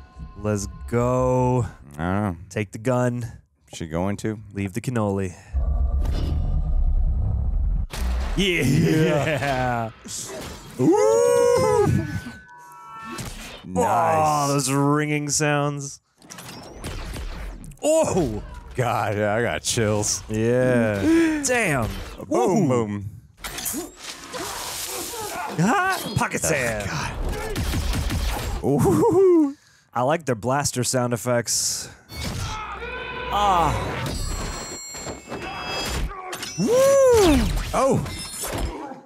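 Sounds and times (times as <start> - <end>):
man's voice: 8.4 - 11.9.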